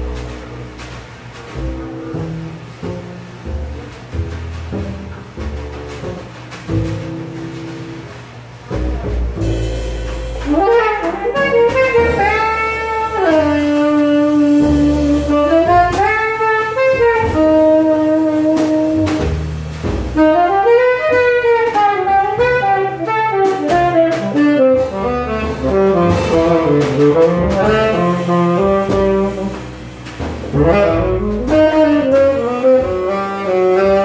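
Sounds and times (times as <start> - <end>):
drums: 0.0 - 34.0
upright bass: 0.0 - 34.0
saxophone melody: 10.4 - 19.5, 20.2 - 29.8, 30.5 - 34.0.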